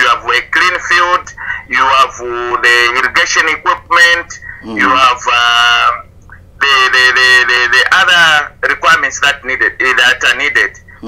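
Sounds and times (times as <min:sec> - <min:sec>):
man talking: 0:00.0 - 0:06.0, 0:06.6 - 0:11.0.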